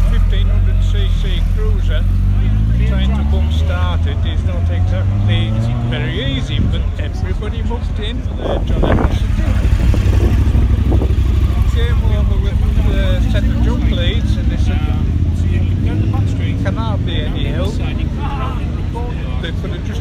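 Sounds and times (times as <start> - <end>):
man talking: 0.0 - 20.0
motorcycle engine rumble: 0.0 - 20.0.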